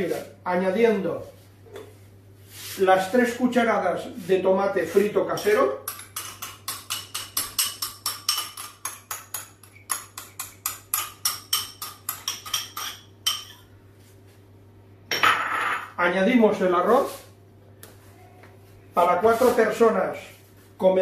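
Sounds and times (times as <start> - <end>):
metal spoon clinking against glass bowl: 5.9 - 13.6.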